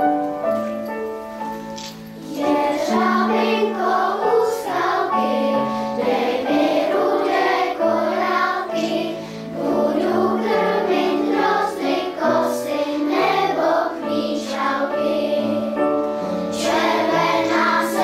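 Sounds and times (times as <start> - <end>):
children's choir singing: 2.2 - 18.0.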